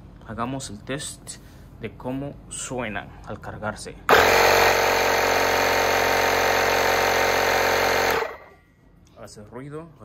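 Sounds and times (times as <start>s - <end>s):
electric air compressor running: 4.1s - 8.6s.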